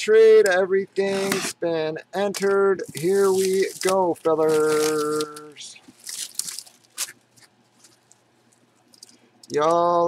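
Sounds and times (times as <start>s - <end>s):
cardboard box rustling on plastic bag: 2.4s - 7.2s.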